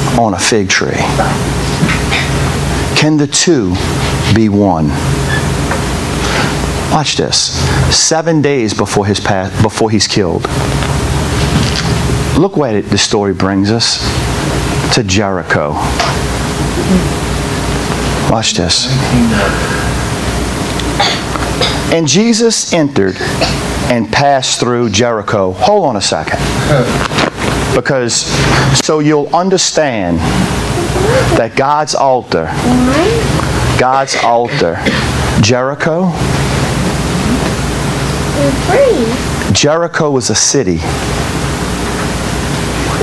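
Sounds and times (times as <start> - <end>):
low hum: 0.0 - 21.9, 32.4 - 39.5.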